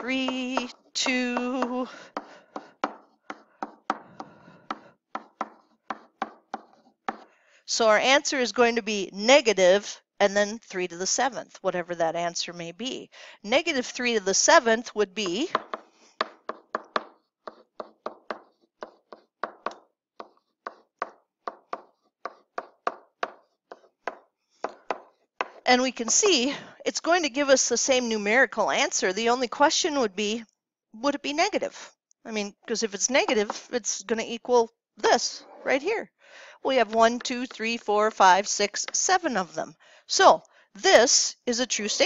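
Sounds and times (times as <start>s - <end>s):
stylus tapping on tablet: 0.0s - 7.3s, 15.2s - 26.4s
stylus scratching on tablet: 4.6s - 7.3s, 15.2s - 26.4s, 41.8s - 42.0s.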